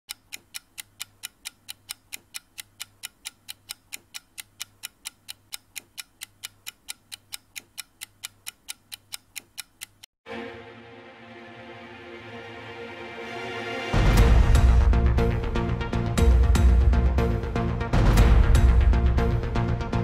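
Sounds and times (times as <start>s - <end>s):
clock ticking: 0.1s - 10.1s.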